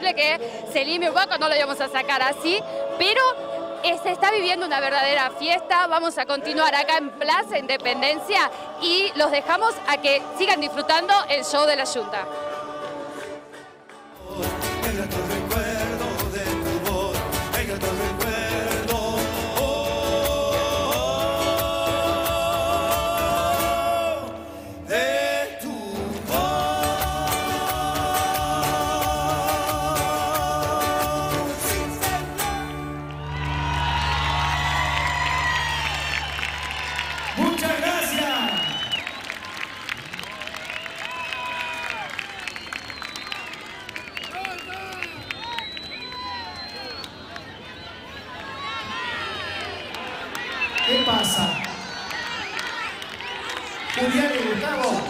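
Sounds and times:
crowd cheering and shouting: 1.0s - 24.4s, 26.1s - 55.0s
acoustic guitar: 12.3s - 37.7s
man singing: 14.2s - 33.0s
loud shout: 32.4s - 42.5s, 43.6s - 55.0s
clapping: 33.3s - 37.7s, 38.5s - 47.5s, 49.6s - 55.0s.

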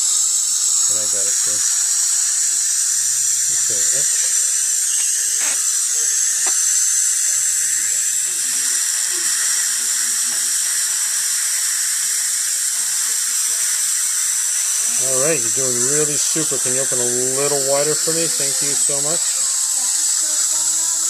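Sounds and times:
saliva ejector suction hiss: 0.1s - 21.0s.

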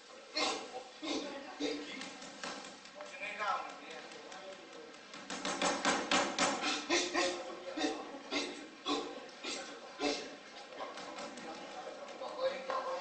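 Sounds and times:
grunting voices: 0.3s - 2.0s, 6.6s - 10.4s
rapid sharp knocks: 5.1s - 6.6s.

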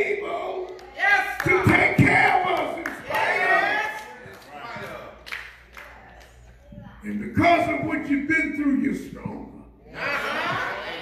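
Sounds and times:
preacher shouting chant-like phrases: 0.0s - 4.0s.

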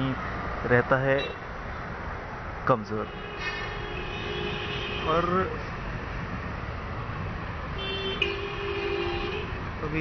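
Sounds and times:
low traffic rumble: 0.0s - 10.0s.

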